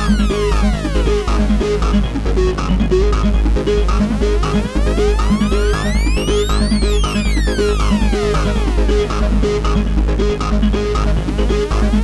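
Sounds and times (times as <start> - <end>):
falling synth sweep: 0.0 - 1.6, 4.2 - 9.2
short repeating synth notes: 0.0 - 1.6, 4.2 - 9.2
deep synth bass: 0.0 - 12.0.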